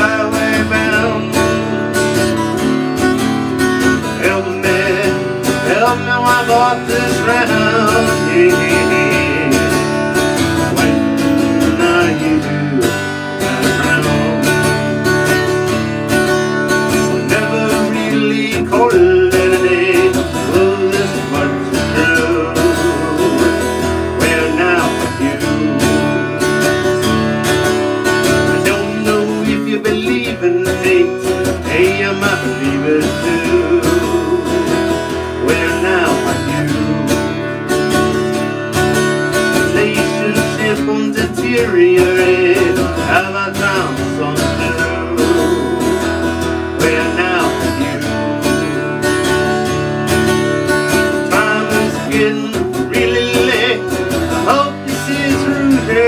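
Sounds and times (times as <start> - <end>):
harmonica melody: 0.0 - 56.0
strummed acoustic guitar: 0.0 - 56.0.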